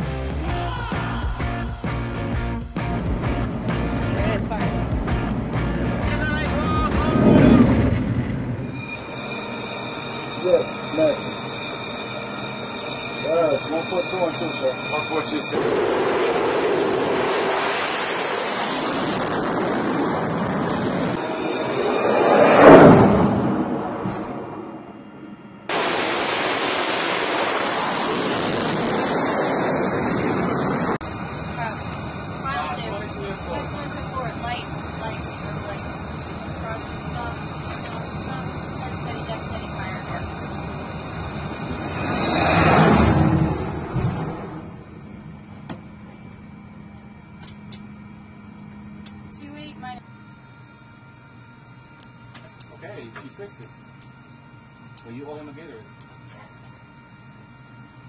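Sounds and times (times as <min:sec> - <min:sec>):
jet engine roar: 0:02.8 - 0:50.0.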